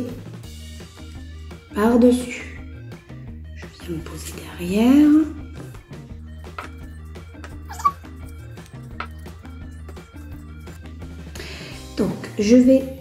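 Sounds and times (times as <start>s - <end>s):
background music soft low notes: 0.0s - 13.0s.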